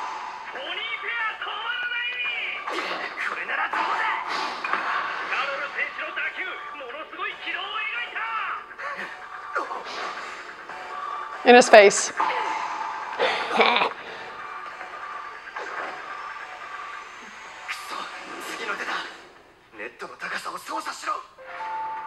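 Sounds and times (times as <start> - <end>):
background music: 0.0 - 22.0
announcer speaking excitedly: 0.6 - 2.6, 5.4 - 8.7, 11.5 - 12.1.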